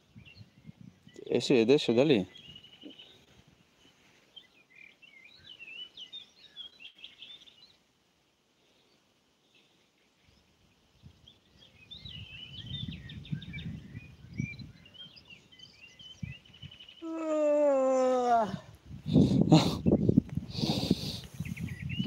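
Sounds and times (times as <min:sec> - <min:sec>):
wind rumbling on microphone: 0:00.0 - 0:03.6, 0:10.2 - 0:22.0
small birds chirping: 0:00.0 - 0:08.0, 0:08.6 - 0:22.0.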